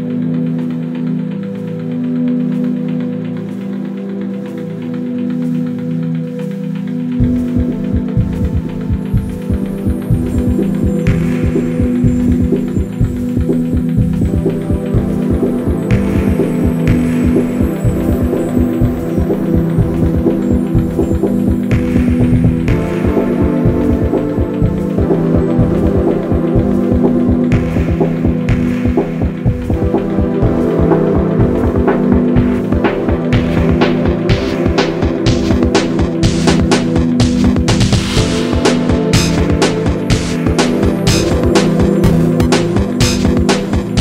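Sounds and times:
ambient electronic music: 0.0s - 44.0s.

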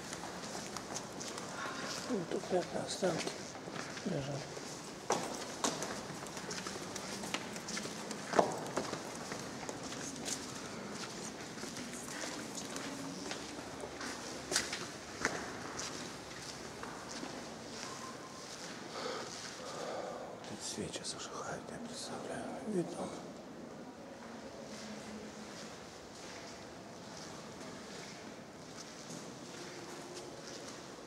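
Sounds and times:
footsteps on stone floor: 0.0s - 19.6s
steady background hush: 0.0s - 27.8s.

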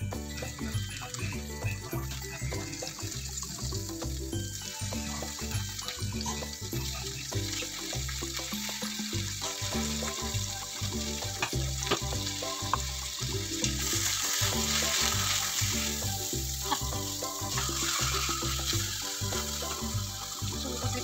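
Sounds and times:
background music with steady beat: 0.0s - 21.0s
meat sizzling in a pan: 0.0s - 21.0s.

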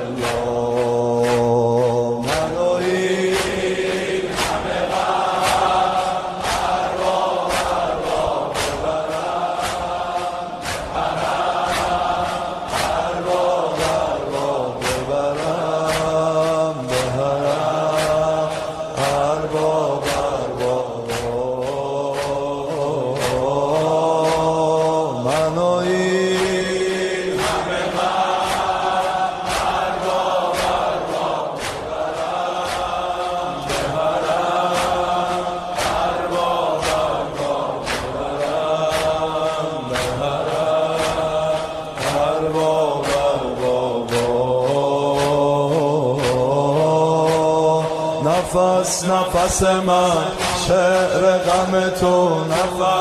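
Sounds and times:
person chanting a lament: 0.0s - 53.0s
steady beat: 0.0s - 53.0s.

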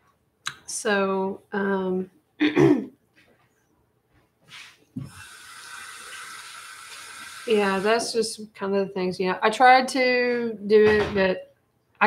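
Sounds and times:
woman clearing her throat: 2.4s - 3.0s
steady hiss: 4.5s - 8.4s.

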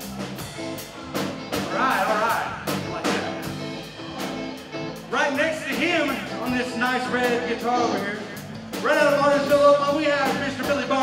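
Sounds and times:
electric bass guitar: 0.0s - 11.0s
live band playing: 0.0s - 11.0s.

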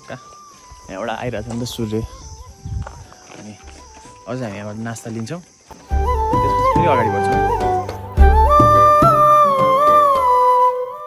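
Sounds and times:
flute music: 0.0s - 5.1s, 5.7s - 11.0s
man talking: 6.3s - 7.6s.

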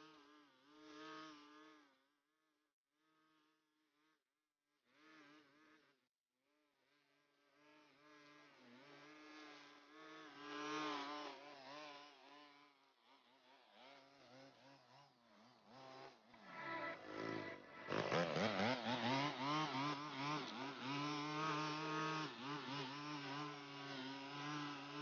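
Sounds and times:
string trimmer engine buzz: 0.0s - 2.0s, 4.9s - 5.9s, 7.4s - 25.0s.

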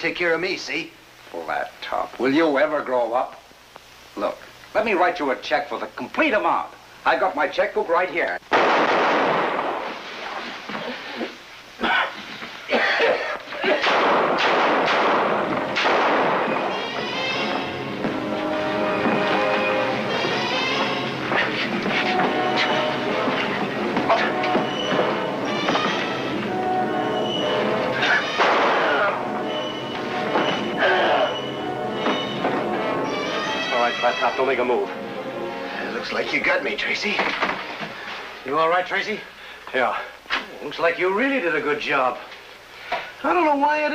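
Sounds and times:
handgun shots in small room: 8.5s - 10.0s, 13.8s - 16.9s, 28.3s - 29.0s
thumps of fistfight: 28.3s - 29.1s.

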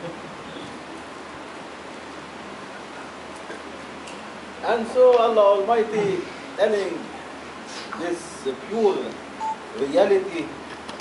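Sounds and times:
steady room noise hiss: 0.0s - 11.0s.

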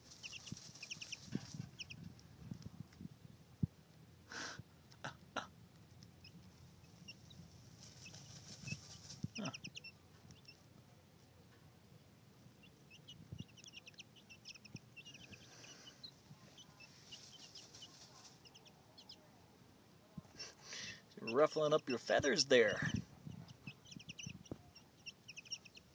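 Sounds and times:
chicks peeping: 0.0s - 2.7s, 5.7s - 19.2s, 20.3s - 25.9s
rustles of loose dirt: 7.2s - 9.6s.

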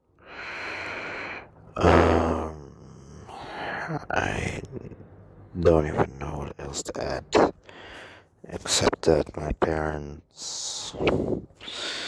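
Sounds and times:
man exhaling: 0.2s - 2.5s, 10.9s - 12.0s
man grunting: 1.8s - 5.0s.

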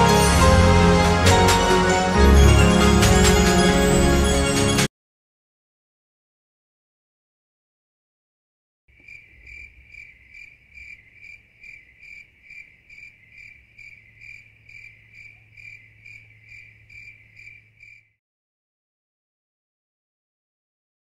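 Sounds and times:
crickets chirping: 8.9s - 18.2s.

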